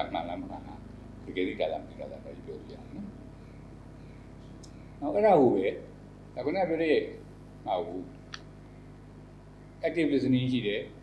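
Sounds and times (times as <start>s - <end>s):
man speaking: 0.0s - 3.2s, 5.0s - 8.1s, 9.8s - 11.0s
low electrical hum: 0.0s - 11.0s.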